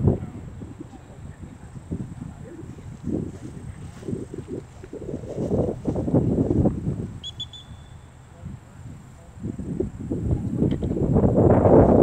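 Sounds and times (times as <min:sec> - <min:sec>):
wind rumble on microphone: 0:00.0 - 0:12.0
high whistle pips: 0:07.2 - 0:08.2.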